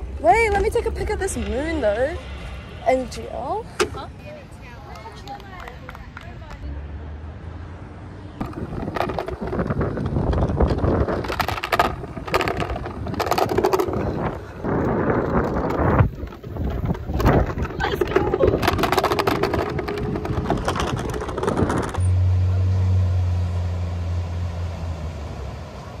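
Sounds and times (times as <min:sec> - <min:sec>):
wind rumbling on microphone: 0:08.4 - 0:22.1.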